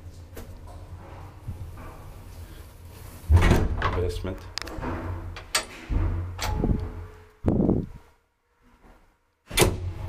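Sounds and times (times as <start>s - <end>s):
elevator machinery clunks and thumps: 3.3s - 7.6s.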